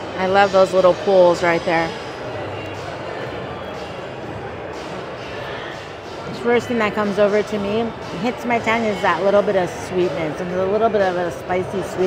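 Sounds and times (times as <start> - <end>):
distant voices in large hall: 0.0 - 12.0.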